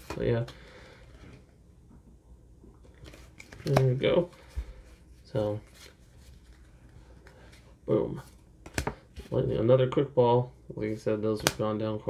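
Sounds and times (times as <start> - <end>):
rustle of handling cards: 2.8 - 9.6.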